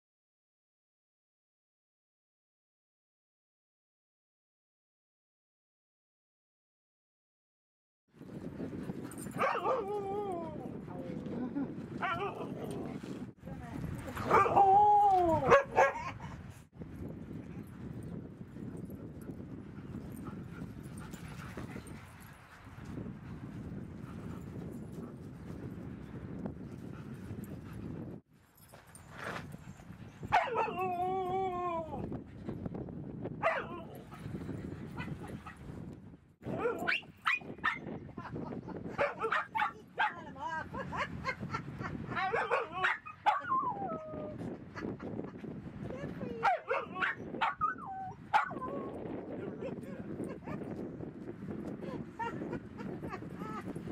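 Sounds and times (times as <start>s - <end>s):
dogs yipping and whining: 9.1s - 10.6s, 30.2s - 31.8s, 36.6s - 37.8s, 46.4s - 50.6s.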